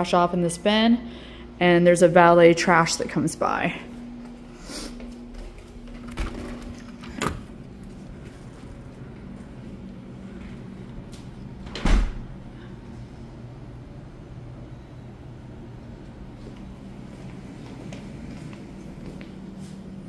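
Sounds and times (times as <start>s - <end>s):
steady low hum: 0.0s - 20.0s
loud door thump: 11.7s - 12.3s.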